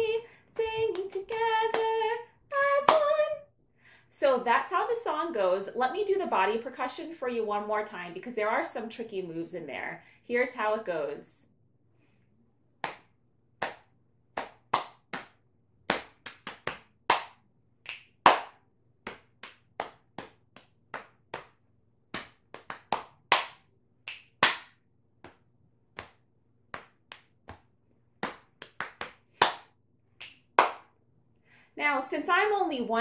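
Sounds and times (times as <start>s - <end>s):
hand claps: 0.6s - 2.0s, 12.8s - 30.9s.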